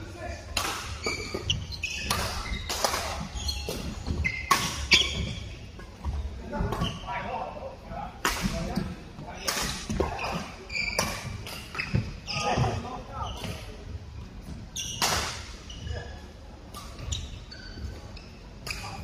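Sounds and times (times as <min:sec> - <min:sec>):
rackets hitting shuttlecock: 0:00.6 - 0:05.4, 0:08.2 - 0:08.8
shoes squeaking on court: 0:00.8 - 0:07.3, 0:08.7 - 0:19.0.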